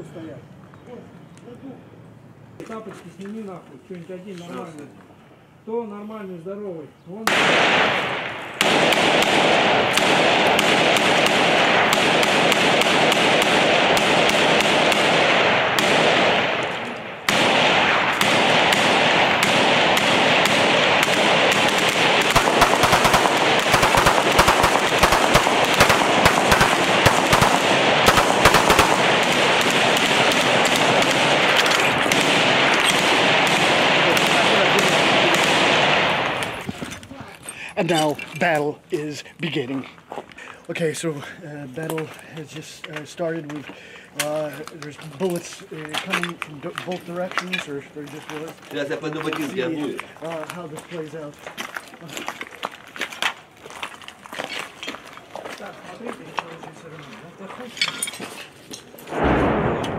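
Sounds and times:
automatic gunfire: 0:07.3 - 0:36.6.

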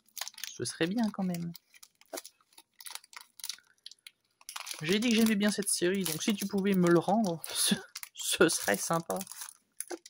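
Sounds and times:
foil wrapper crinkling: 0:00.0 - 0:10.0
person speaking: 0:00.4 - 0:01.6, 0:04.7 - 0:10.0.

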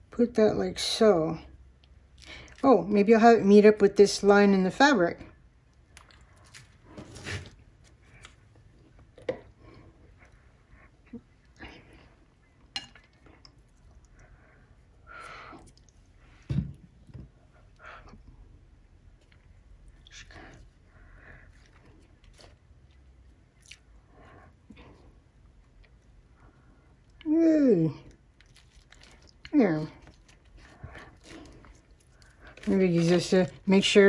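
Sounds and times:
paper and foil crinkling: 0:28.6 - 0:34.0.

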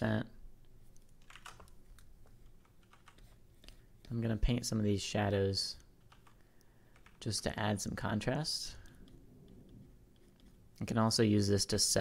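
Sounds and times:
keyboard and mouse clicks: 0:00.6 - 0:03.8, 0:08.8 - 0:10.8.

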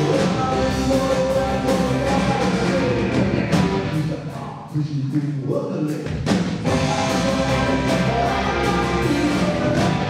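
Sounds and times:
thin band accompaniment: 0:06.3 - 0:10.0
voices singing held notes: 0:06.7 - 0:10.0.

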